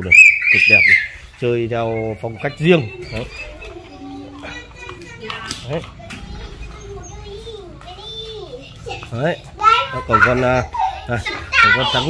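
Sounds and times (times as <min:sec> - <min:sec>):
man speaking: 0:00.0 - 0:03.6, 0:09.1 - 0:12.0
children chattering and playing: 0:00.0 - 0:12.0.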